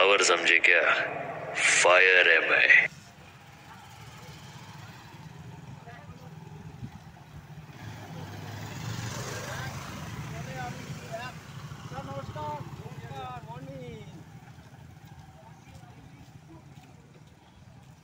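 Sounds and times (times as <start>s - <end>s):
people's voices: 0.0s - 4.9s
motorcycles passing at low speed: 0.0s - 18.0s.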